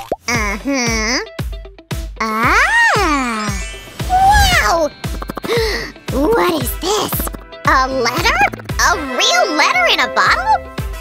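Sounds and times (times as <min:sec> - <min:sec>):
children's background music: 0:00.2 - 0:11.0
cartoon character wordless voice: 0:00.3 - 0:01.4, 0:02.2 - 0:04.9, 0:06.1 - 0:10.6.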